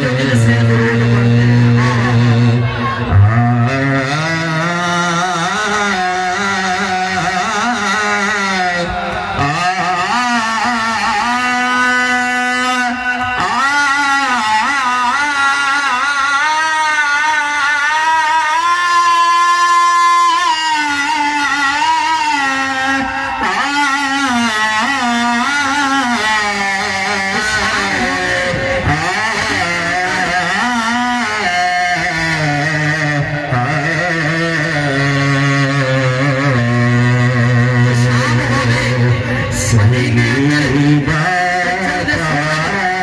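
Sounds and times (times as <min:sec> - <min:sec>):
man singing devotional song: 0:00.0 - 0:43.0.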